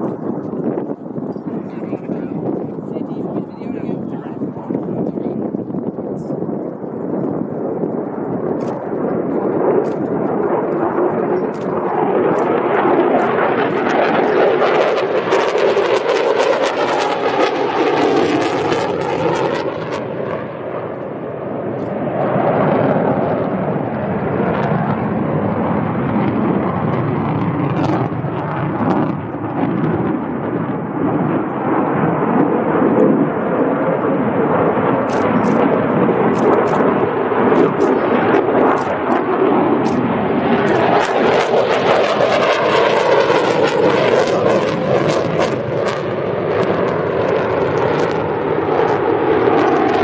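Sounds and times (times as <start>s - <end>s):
jet aircraft flying past: 0.0s - 50.0s.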